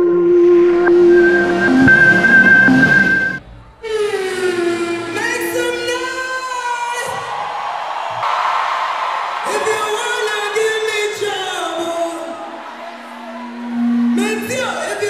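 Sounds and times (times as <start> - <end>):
electronic logo jingle: 0.0 - 3.4
loud backing music: 0.0 - 3.4.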